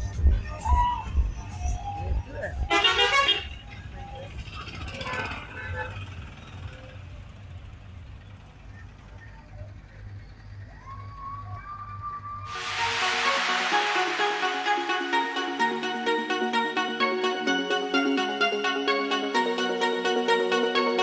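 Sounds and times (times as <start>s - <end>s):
loud music: 0.0s - 3.6s, 12.5s - 21.0s
bus engines rumbling: 0.0s - 13.4s
road traffic: 0.0s - 21.0s.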